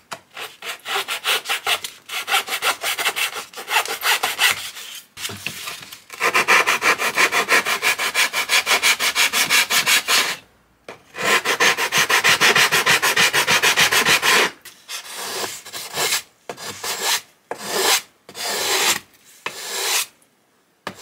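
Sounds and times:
hand tool rubbing wood: 19.5s - 20.1s.

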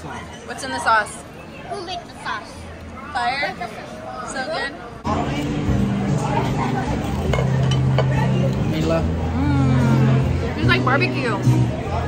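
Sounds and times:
voices chattering: 0.0s - 12.0s
tableware clinking: 7.0s - 8.5s.

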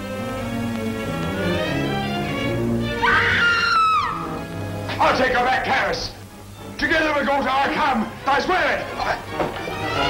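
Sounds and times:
woman screaming: 3.0s - 4.3s.

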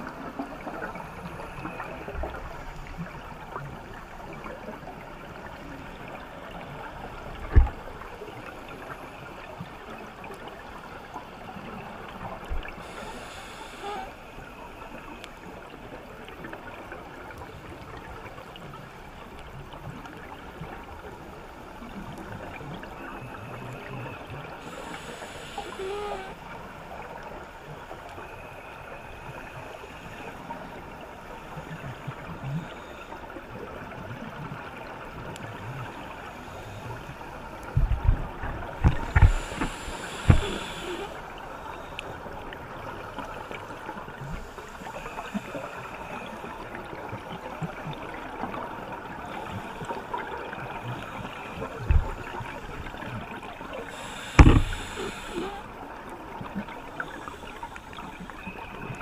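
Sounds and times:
scuba regulator bubbles gurgling: 0.0s - 59.0s
underwater hiss and crackle: 0.0s - 59.0s.

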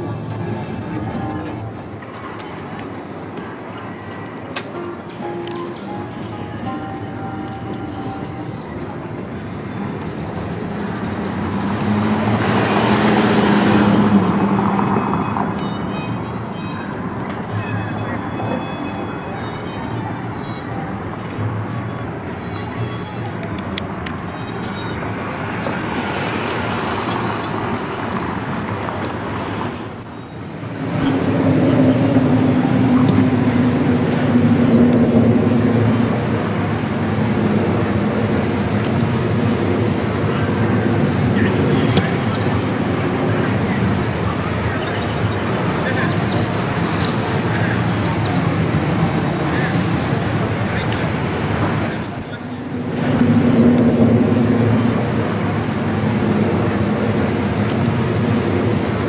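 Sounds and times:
motor vehicles passing: 0.0s - 59.0s.

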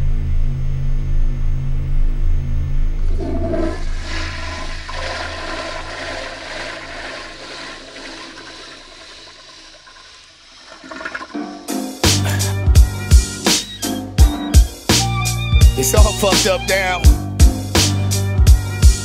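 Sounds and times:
low drone: 0.0s - 4.8s
toilet flushing: 3.2s - 12.5s
music: 11.4s - 19.0s.

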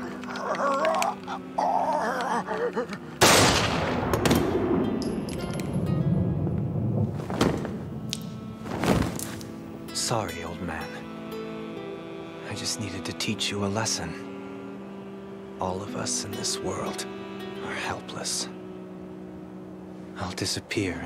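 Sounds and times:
music score: 0.0s - 21.0s
handgun shot echoing: 3.2s - 5.7s.

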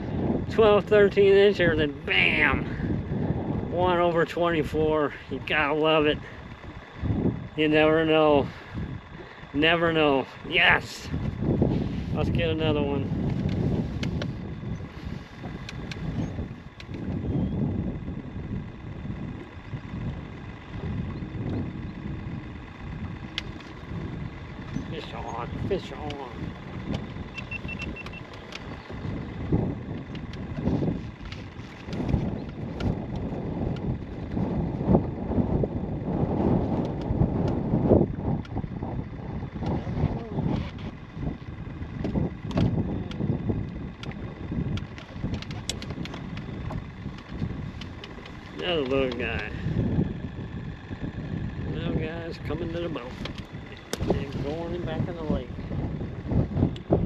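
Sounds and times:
wind rumbling on microphone: 0.0s - 57.0s
fishing rod and reel clicks: 15.5s - 17.5s, 23.2s - 23.8s, 30.0s - 33.9s, 42.0s - 49.3s, 52.8s - 55.0s
short high beep: 27.4s - 28.2s.

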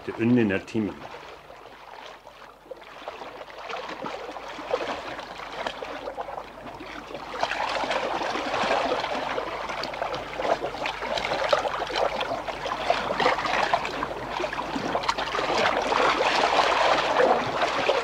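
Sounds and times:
water splashing around boat: 0.0s - 18.0s.

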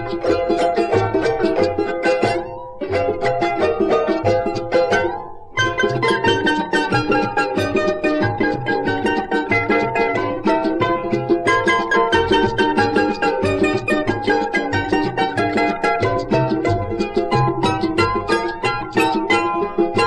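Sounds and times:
baritone charango rhythm: 0.0s - 20.0s
plucked charango melody: 0.0s - 20.0s.

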